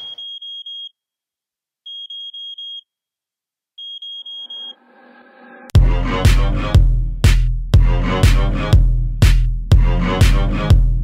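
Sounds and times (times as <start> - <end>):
high electronic alarm beeps: 0.0 - 0.9, 1.9 - 2.8, 3.8 - 4.8
heavy kick-drum beat: 5.8 - 11.0.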